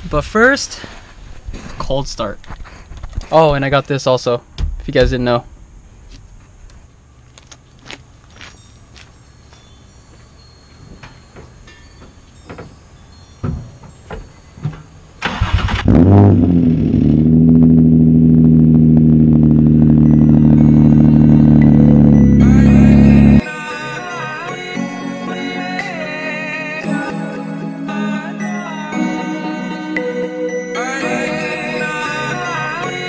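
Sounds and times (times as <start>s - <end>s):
car engine starting and idling: 15.2s - 23.4s.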